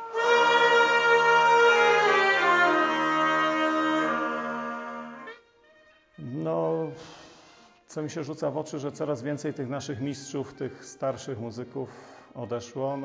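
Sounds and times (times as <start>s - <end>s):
folk band with violins: 0.0s - 10.9s.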